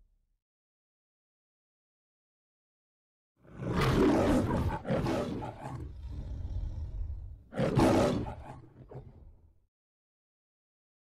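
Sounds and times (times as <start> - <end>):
lion growling low: 3.4 - 9.4
lion roaring: 3.4 - 9.4.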